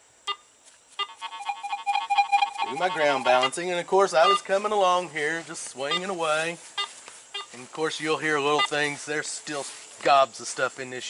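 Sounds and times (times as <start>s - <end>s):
metal detector beeps: 0.2s - 4.6s, 5.8s - 7.6s, 8.4s - 8.9s
steady electronic tone: 1.0s - 4.5s.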